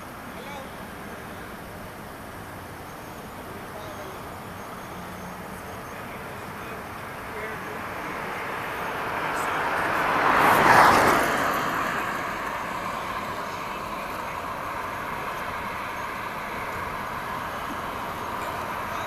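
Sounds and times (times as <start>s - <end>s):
traffic hum: 0.0s - 19.0s
car passing close by: 6.8s - 19.0s.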